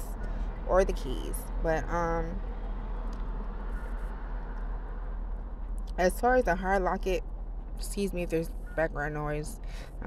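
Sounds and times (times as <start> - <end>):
continuous low rumble: 0.0 - 10.0.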